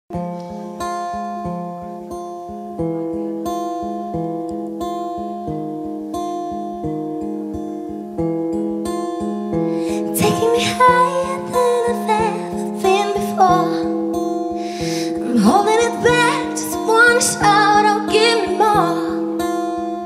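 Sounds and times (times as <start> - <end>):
acoustic guitar strumming: 0.1 - 20.0.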